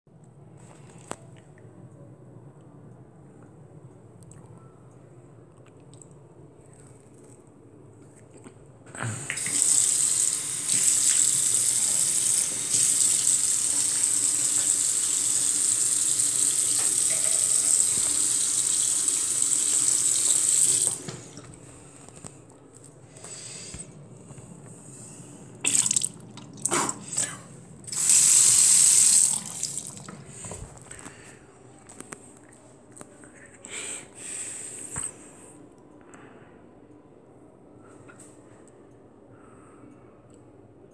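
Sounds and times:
water running into basin: 9.1 - 21.5, 25.6 - 27.0, 27.9 - 30.2
faucet turning on: 9.3 - 21.2, 27.9 - 30.1.

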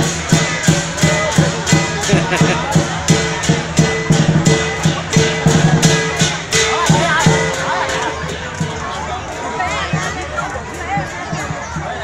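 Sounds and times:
cymbals clashing: 0.0 - 11.6
big drum beating: 0.0 - 12.0.

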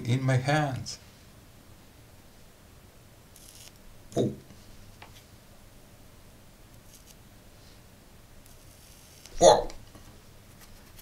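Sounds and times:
soft high hiss: 0.0 - 11.0.

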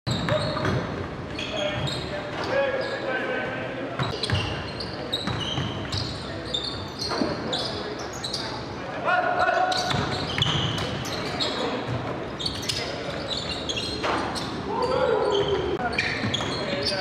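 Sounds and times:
sneaker squeaks: 0.1 - 3.2, 4.0 - 8.7, 9.4 - 17.0.

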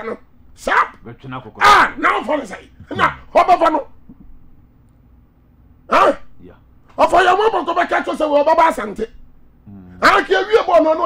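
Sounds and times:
faint studio hum: 0.0 - 11.0.

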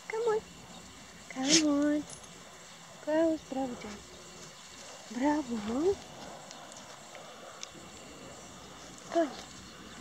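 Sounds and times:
microphone rustling on dog fur: 1.4 - 1.8.

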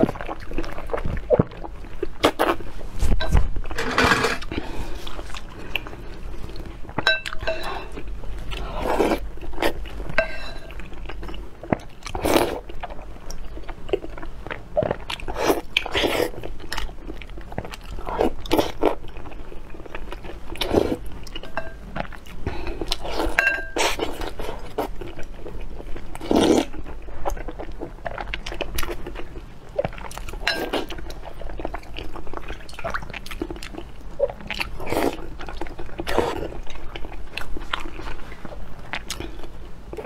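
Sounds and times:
person slurping and chewing soup: 0.0 - 40.0.

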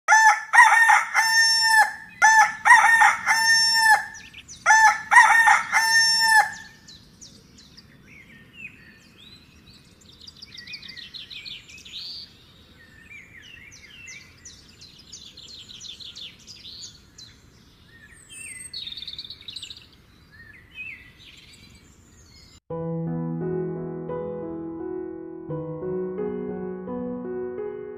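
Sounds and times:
rooster crowing: 0.1 - 6.8
small birds chirping: 1.6 - 5.1, 5.8 - 22.6.

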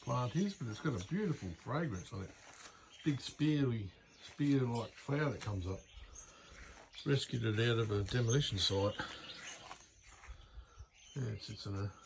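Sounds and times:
distant bird calls: 0.0 - 12.0.

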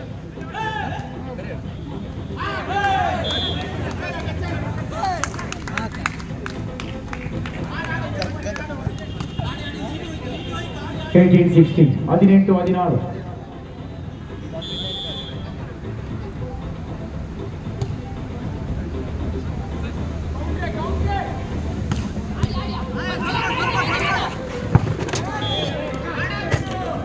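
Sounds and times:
crowd hubbub and shouting: 0.0 - 27.0
short high whistle blast: 14.6 - 15.4.

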